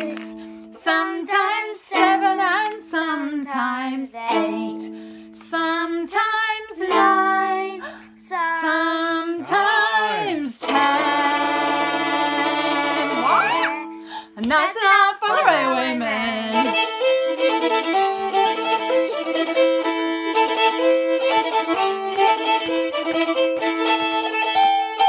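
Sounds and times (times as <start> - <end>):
plucked fiddle strings: 0.0 - 8.0, 9.5 - 14.6, 15.3 - 25.0
woman singing: 0.0 - 17.0.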